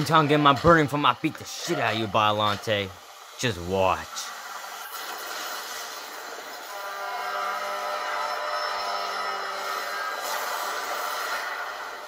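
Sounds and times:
animation soundtrack noisy rush: 0.0s - 12.0s.

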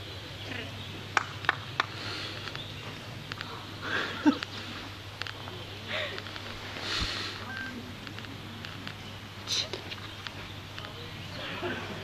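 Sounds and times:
rustling hiss: 0.0s - 12.0s
mobile phone beep: 7.5s - 7.8s.

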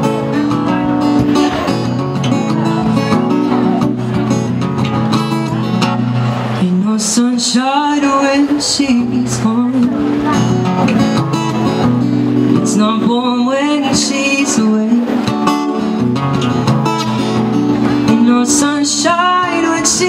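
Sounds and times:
acoustic guitar strumming: 0.0s - 20.0s
man singing: 6.6s - 10.5s, 12.6s - 15.4s, 18.0s - 20.0s.

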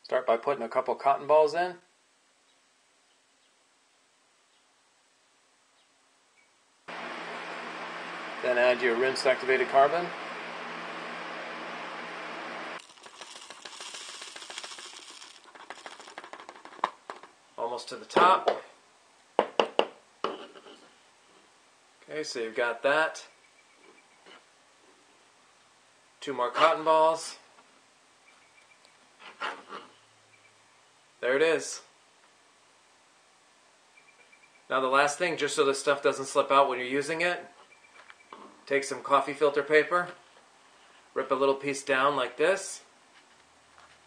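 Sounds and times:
steady hiss with low hum: 0.0s - 44.0s
carbon granules pouring into tube: 12.8s - 17.2s.

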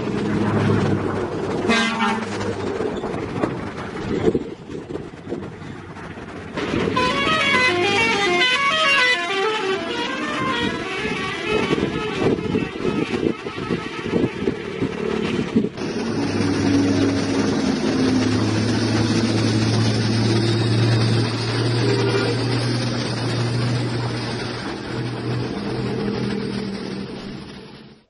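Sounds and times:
truck diesel engine droning: 0.0s - 28.0s
tyre and road noise: 0.0s - 28.0s.

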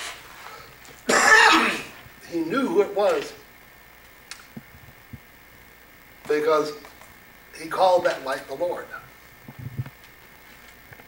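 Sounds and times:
man coughing: 1.1s - 2.0s.

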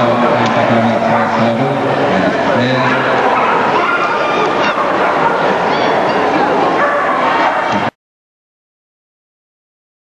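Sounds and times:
loud crowd chatter: 0.0s - 8.0s
dogs barking and yipping: 0.7s - 1.6s, 2.6s - 7.9s.

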